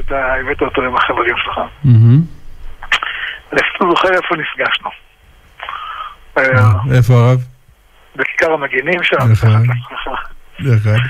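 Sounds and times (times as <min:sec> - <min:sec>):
people talking: 0:00.0 - 0:02.3, 0:03.5 - 0:05.0, 0:06.4 - 0:07.5, 0:08.2 - 0:11.0.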